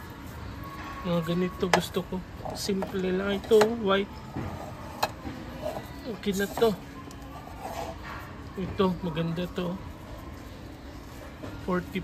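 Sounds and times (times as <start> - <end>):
shop background noise: 0.0 - 12.0.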